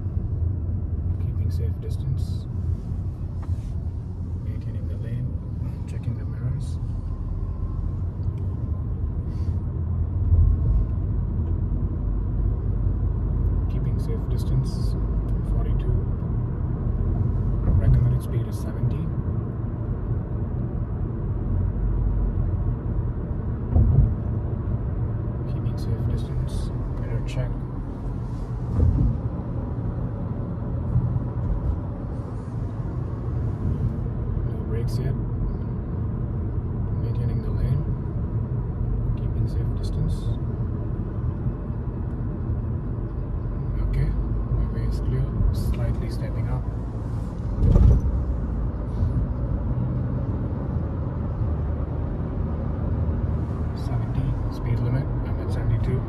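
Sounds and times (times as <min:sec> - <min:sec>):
car road and engine rumble: 0:00.0 - 0:56.0.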